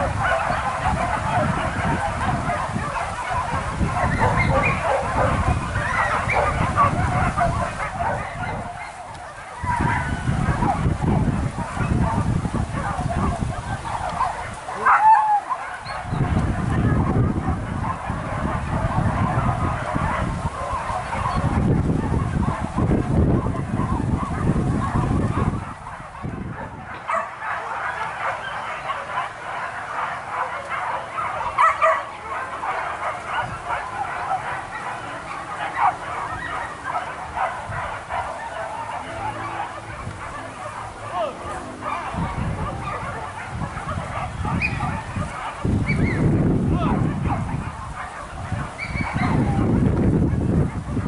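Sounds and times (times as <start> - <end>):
dogs barking and yelping: 0.0 - 51.0
human voices: 27.5 - 47.5.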